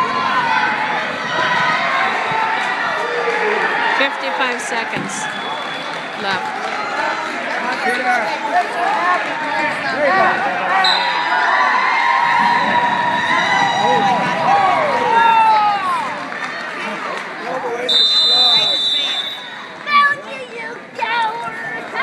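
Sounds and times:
spectators shouting and cheering: 0.0s - 22.0s.

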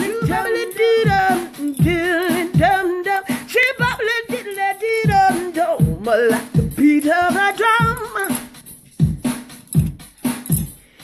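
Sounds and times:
person singing: 0.0s - 8.5s
beatboxing: 0.0s - 11.0s.

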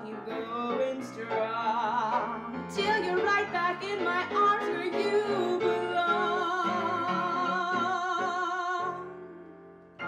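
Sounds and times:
woman singing with vibrato: 0.0s - 9.3s
upright piano accompaniment: 0.0s - 10.0s.

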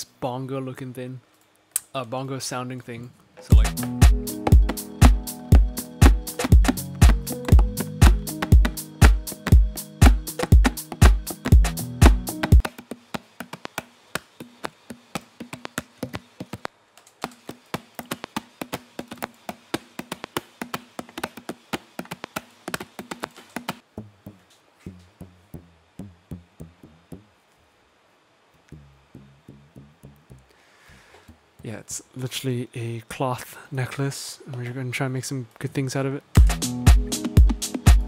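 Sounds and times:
low bass notes with clicks: 3.4s - 12.6s, 23.8s - 27.4s, 28.6s - 30.5s
sharp percussive taps: 3.4s - 27.3s
faint low hum: 23.8s - 35.8s.

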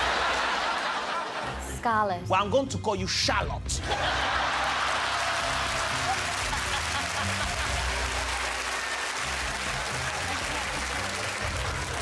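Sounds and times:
audience laughing and applauding: 0.0s - 1.8s, 3.8s - 12.0s
music playing: 0.0s - 12.0s.

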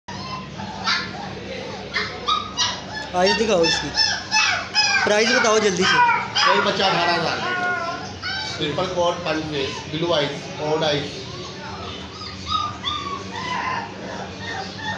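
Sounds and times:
kittens mewing: 0.1s - 14.9s
young animal whimpering: 0.1s - 14.9s.

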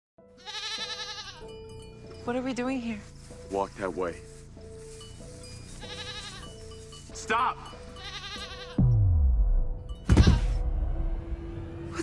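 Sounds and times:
goat bleating: 0.4s - 1.5s, 5.8s - 6.6s, 7.9s - 8.9s.

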